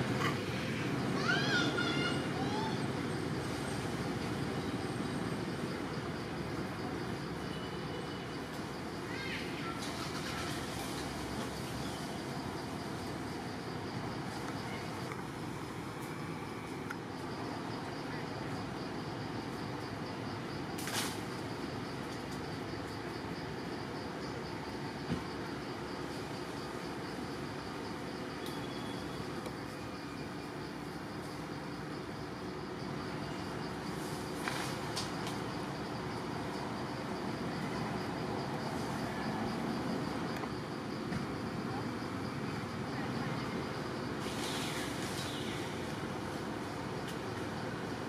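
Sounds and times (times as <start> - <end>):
high insect trill: 0.0 - 48.0.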